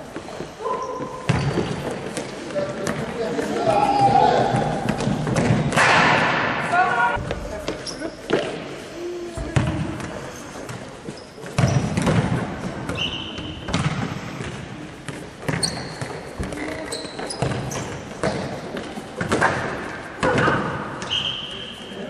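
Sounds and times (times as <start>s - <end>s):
shoes squeaking on floor: 0.0s - 5.6s, 7.2s - 8.6s, 9.3s - 12.2s, 12.8s - 13.8s, 14.4s - 19.6s, 20.4s - 22.0s
players shouting: 3.3s - 5.0s.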